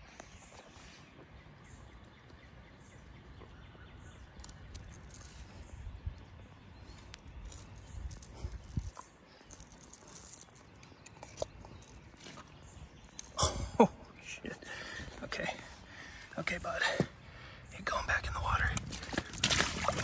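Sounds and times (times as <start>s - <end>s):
clicks and rustles of hands: 4.3s - 13.4s, 18.7s - 20.0s.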